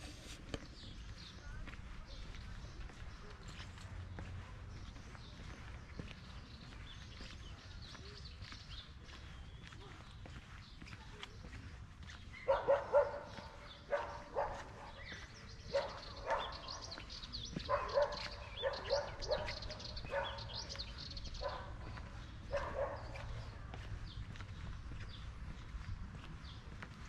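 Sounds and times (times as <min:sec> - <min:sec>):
dog barking: 0:12.4 - 0:23.4.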